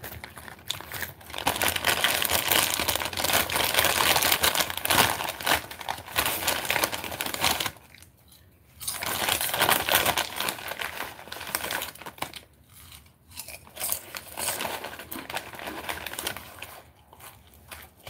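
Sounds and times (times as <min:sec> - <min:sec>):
chip bag crinkling: 0:00.0 - 0:18.0.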